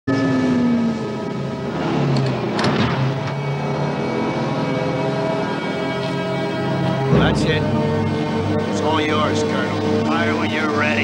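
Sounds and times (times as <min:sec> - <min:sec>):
diesel truck engines running: 0:00.1 - 0:11.0.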